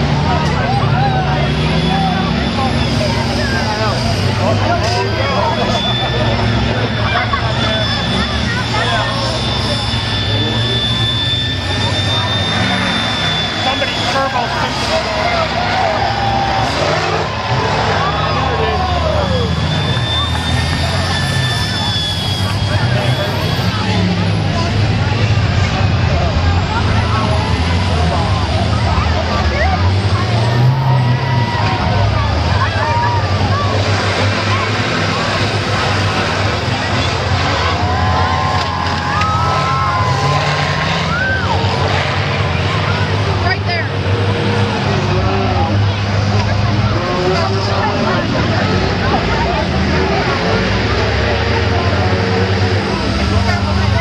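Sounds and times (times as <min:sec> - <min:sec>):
bus engines running hard: 0:00.0 - 0:54.0
crowd voices: 0:00.0 - 0:54.0
vehicles crashing: 0:00.0 - 0:54.0.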